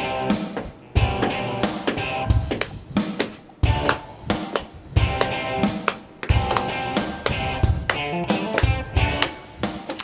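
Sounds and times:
guitar music over drum beat: 0:00.0 - 0:10.0.

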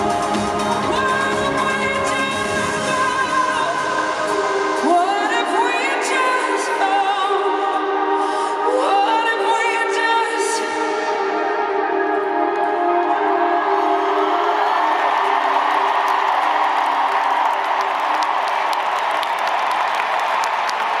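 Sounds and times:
stadium crowd cheering and applauding: 0:00.0 - 0:08.0, 0:11.7 - 0:21.0.

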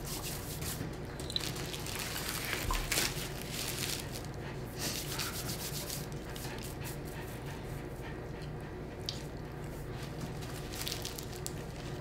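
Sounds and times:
steady low hum: 0:00.0 - 0:12.0
paper wrapper crinkling: 0:01.3 - 0:04.3, 0:10.4 - 0:12.0.

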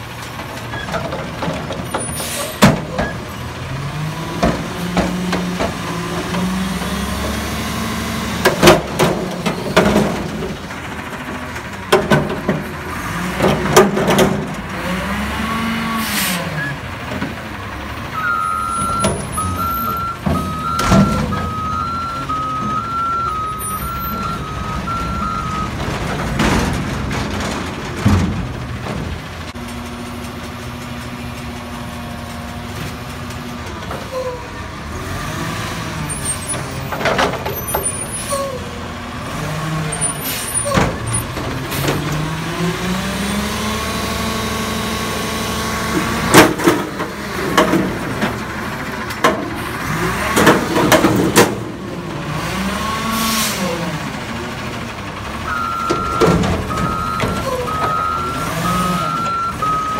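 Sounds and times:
diesel engine revving: 0:00.0 - 0:59.9
reversing beeps: 0:18.2 - 0:25.8, 0:55.5 - 0:59.9.

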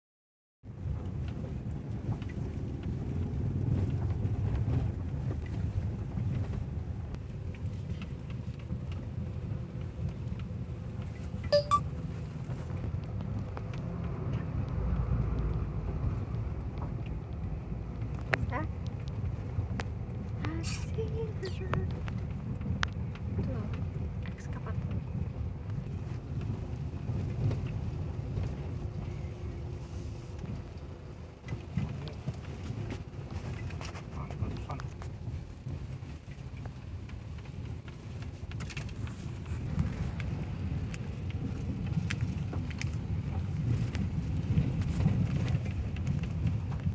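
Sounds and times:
tyre and engine rumble: 0:00.6 - 0:46.9.

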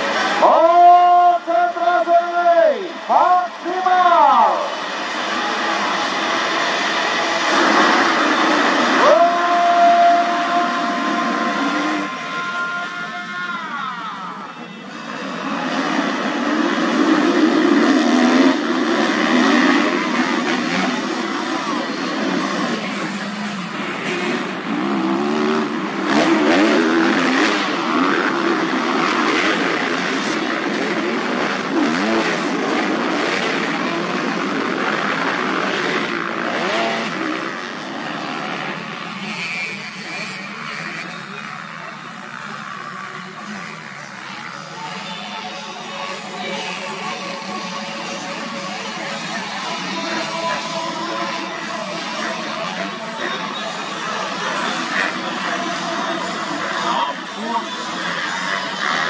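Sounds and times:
motocross bike engines revving: 0:00.0 - 0:59.0.

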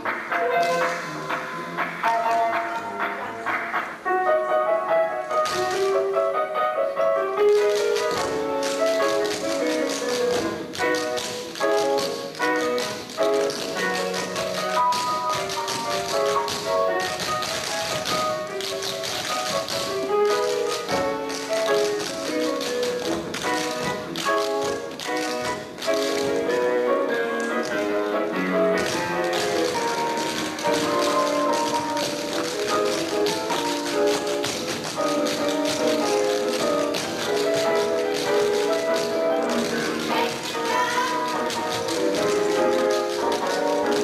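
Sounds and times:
tap shoes on wooden stage: 0:05.3 - 0:06.2, 0:07.4 - 0:44.0
melodic dance music: 0:07.5 - 0:44.0.

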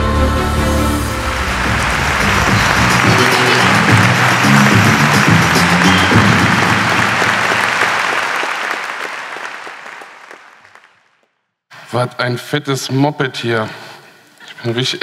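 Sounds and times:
intro theme music: 0:00.0 - 0:08.5
audience applause: 0:00.8 - 0:11.3.

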